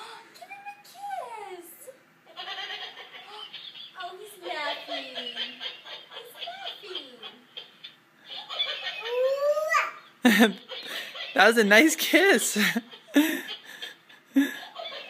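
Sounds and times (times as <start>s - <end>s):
toy cow recorded laughter: 2.3s - 4.0s, 4.7s - 9.6s, 12.9s - 15.0s
toddler babbling: 9.1s - 10.0s.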